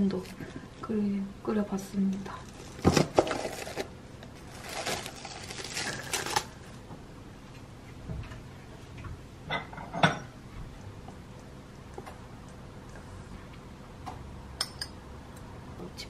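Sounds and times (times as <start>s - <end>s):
plastic rustling: 2.2s - 6.8s
dishware clinking: 9.5s - 10.3s.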